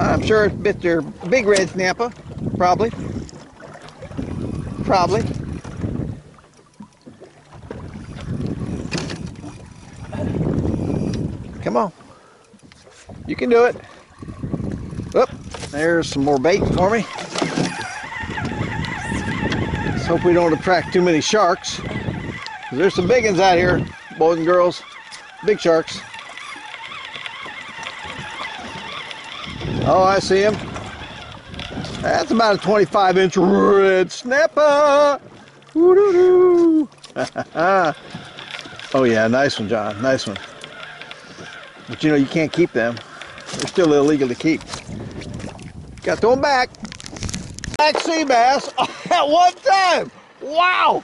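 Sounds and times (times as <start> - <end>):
wind on microphone: 0.0 - 6.4, 7.1 - 34.2, 35.2 - 48.5
water moving around boat: 0.0 - 51.0.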